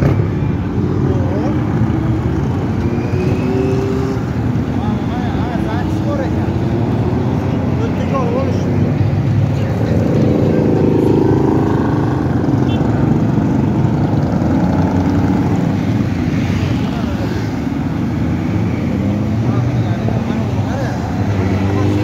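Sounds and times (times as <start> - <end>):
motorcycles riding past: 0.0 - 22.0.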